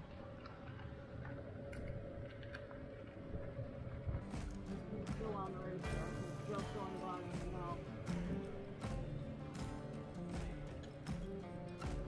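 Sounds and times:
music: 4.0s - 12.0s.

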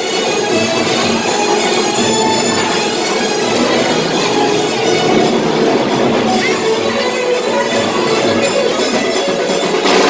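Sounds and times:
crowd: 0.0s - 10.0s
music: 0.0s - 10.0s
metal bells ringing: 0.2s - 9.7s.

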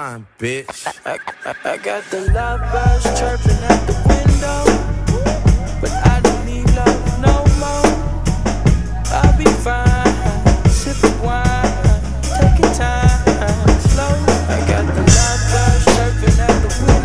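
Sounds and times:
hip-hop backing track: 0.0s - 17.0s
drum kit kick and snare: 2.3s - 17.0s.

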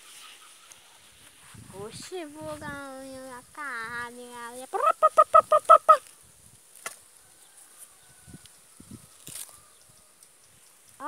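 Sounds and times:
insects droning: 2.1s - 11.0s.

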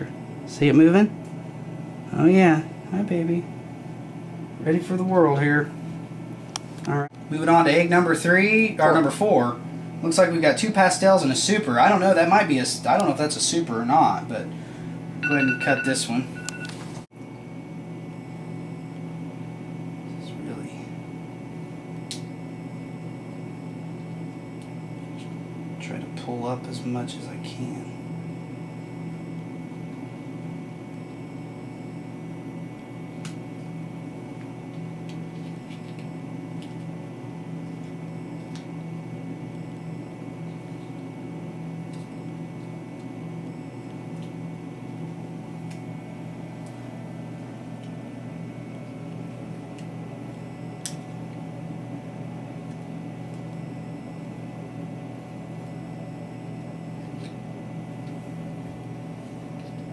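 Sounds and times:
low machine hum: 0.0s - 59.9s.

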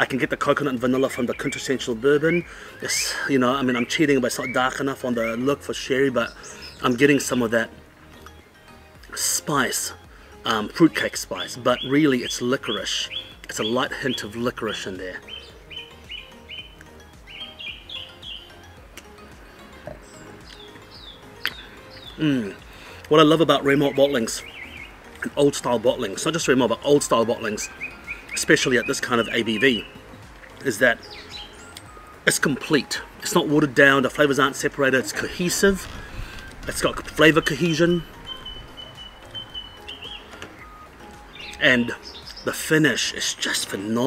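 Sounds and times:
bird chirping: 0.0s - 44.0s
quiet outdoor background noise: 0.0s - 44.0s
bird's high whistled call: 37.4s - 42.5s.

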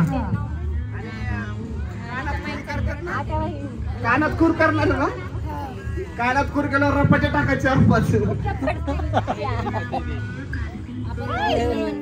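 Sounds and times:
background music: 0.0s - 12.0s
people's voices: 0.0s - 12.0s.

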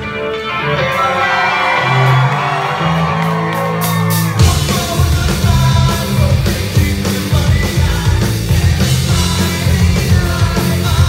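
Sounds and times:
distorted guitars: 0.0s - 11.0s
punk rock band playing: 0.0s - 11.0s
drums crashing: 0.8s - 11.0s.

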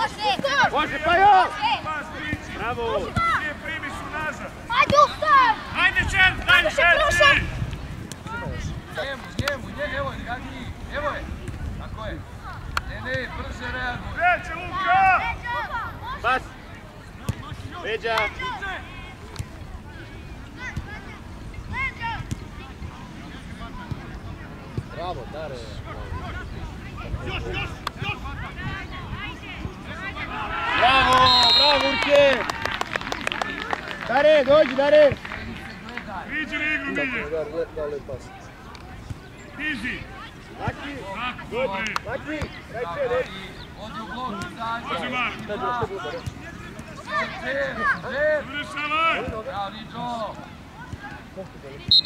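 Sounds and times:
light wind noise: 0.0s - 33.4s.

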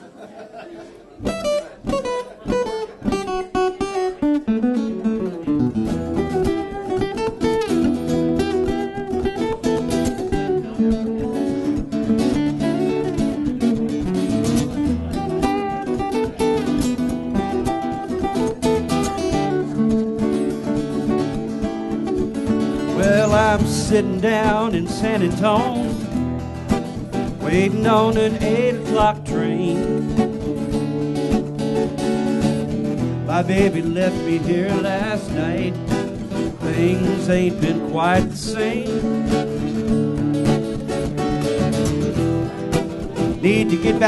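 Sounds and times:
acoustic guitars playing: 1.1s - 44.0s
man singing: 22.8s - 26.2s, 27.2s - 30.5s, 33.2s - 39.4s, 43.2s - 44.0s.

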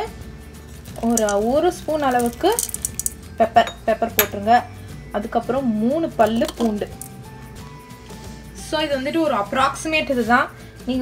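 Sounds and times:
peppercorns clicking into pot: 0.8s - 4.4s, 6.2s - 7.2s.

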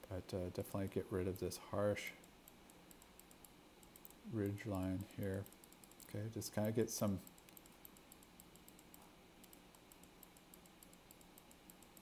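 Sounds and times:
faint low hum: 0.0s - 12.0s
computer mouse clicks: 2.2s - 12.0s.

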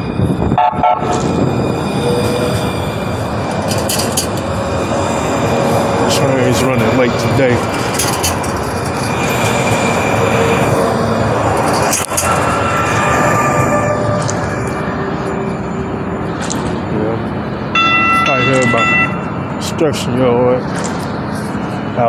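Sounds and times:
train passing: 0.0s - 22.0s
high-pitched tone: 12.0s - 16.3s, 17.7s - 19.6s.

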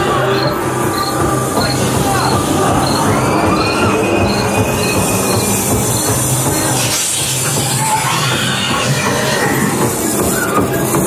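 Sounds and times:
high screeching tone: 0.0s - 10.8s.

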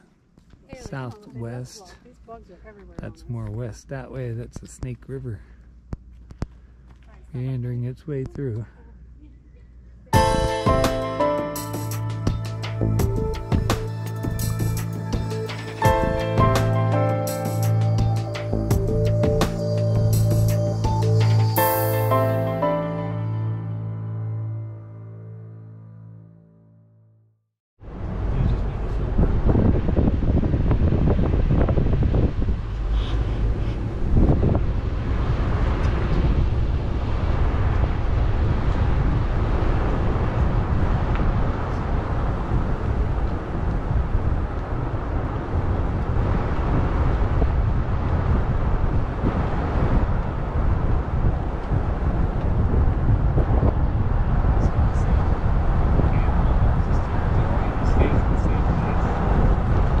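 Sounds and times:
wind blowing across microphone: 27.8s - 60.0s.

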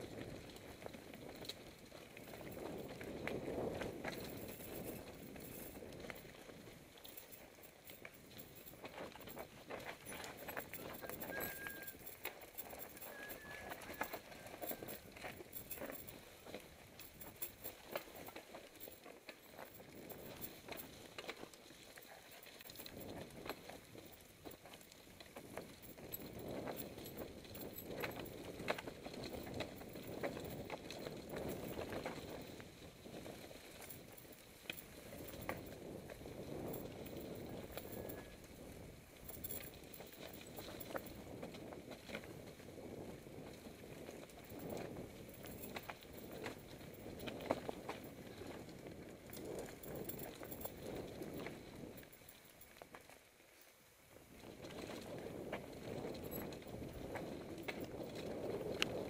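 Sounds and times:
bike tyres rolling over dirt: 0.0s - 59.0s.

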